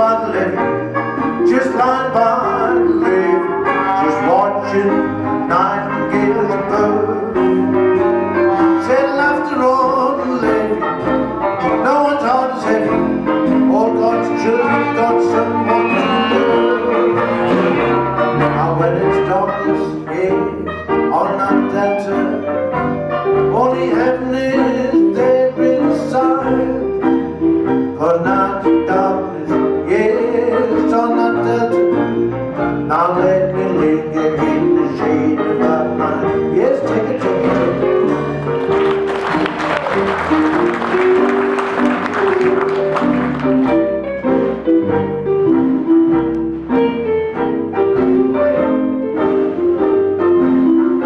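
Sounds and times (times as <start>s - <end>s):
jazz band playing: 0.0s - 51.0s.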